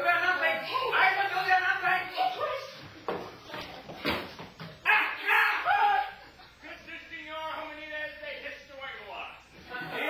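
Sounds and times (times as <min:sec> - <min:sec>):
person exclaiming loudly: 0:04.8 - 0:06.2.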